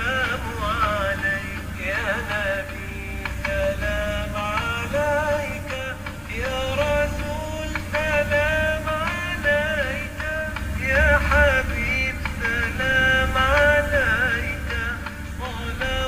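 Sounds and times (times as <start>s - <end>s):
low steady bass: 0.0s - 16.0s.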